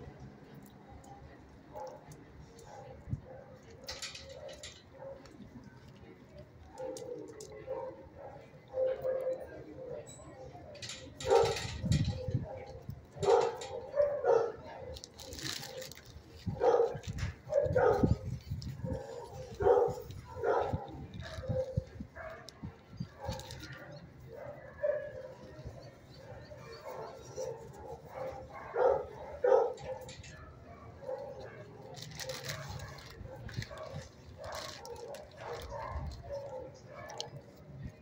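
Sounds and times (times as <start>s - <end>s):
dogs barking: 1.7s - 2.1s, 2.7s - 5.3s, 6.7s - 10.1s, 10.8s - 37.6s.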